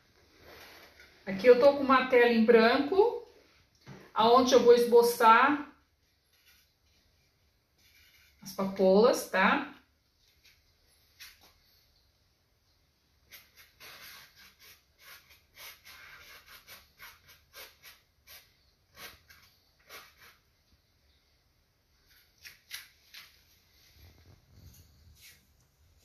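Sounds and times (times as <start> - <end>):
paintbrush strokes on canvas: 6.0 - 8.8, 23.7 - 26.0.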